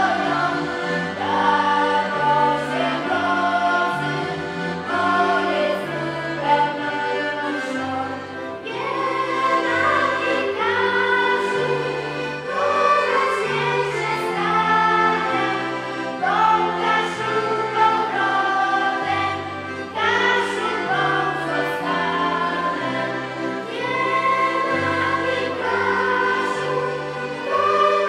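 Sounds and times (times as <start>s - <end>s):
accordions: 0.0s - 28.0s
group of voices singing: 0.0s - 28.0s.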